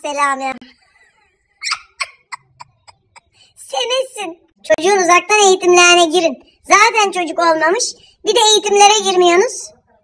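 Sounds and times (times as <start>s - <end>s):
woman's stifled laughter: 0.6s - 3.4s.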